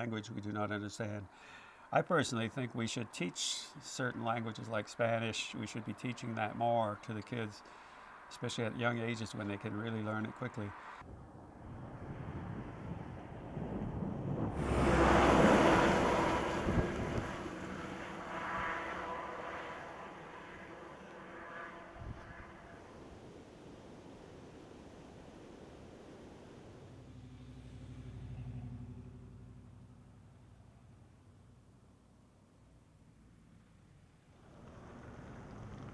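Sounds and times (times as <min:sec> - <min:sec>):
vehicle engine hum in traffic: 0:10.7 - 0:23.6, 0:26.7 - 0:35.9
truck driving on slushy road: 0:11.7 - 0:31.7, 0:33.3 - 0:35.9
soft steady rush: 0:14.6 - 0:28.0.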